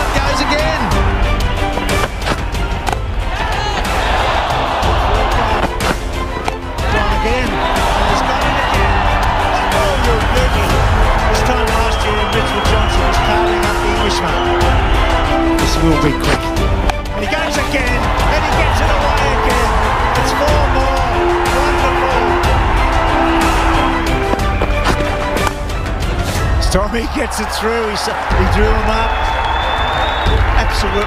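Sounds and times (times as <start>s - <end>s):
dramatic cinematic music: 0.0s - 31.0s
stadium crowd noise: 0.0s - 31.0s.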